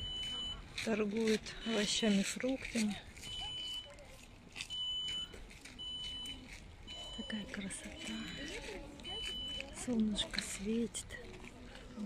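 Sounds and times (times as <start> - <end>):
high electronic beeps: 0.0 - 0.6, 4.7 - 9.8.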